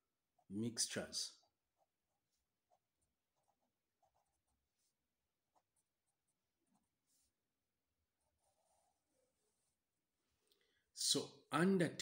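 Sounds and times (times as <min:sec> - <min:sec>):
marker scratching on paper: 0:01.4 - 0:09.8.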